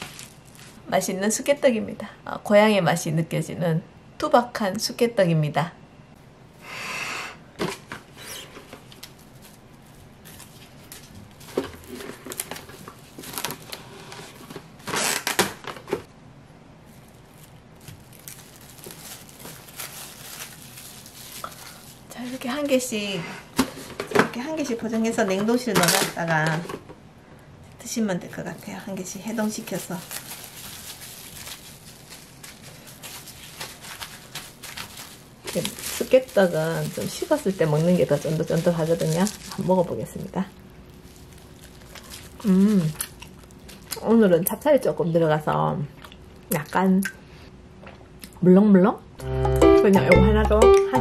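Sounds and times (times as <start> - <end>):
cling wrap rustling: 0.0 - 0.8, 8.0 - 16.0, 16.8 - 23.0, 28.2 - 44.0.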